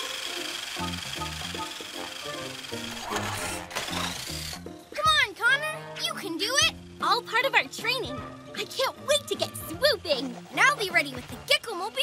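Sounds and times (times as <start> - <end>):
cartoon music with bass line: 0.4 - 11.8.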